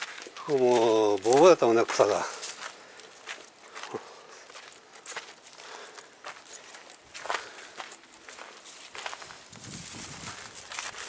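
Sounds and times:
footsteps on dry grass and leaves: 0.0s - 11.0s
leaves rustling: 0.0s - 11.0s.

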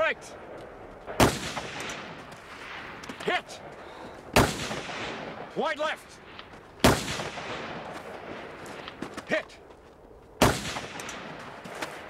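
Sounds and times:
rifle shot with echo: 0.0s - 9.0s, 10.4s - 12.0s.

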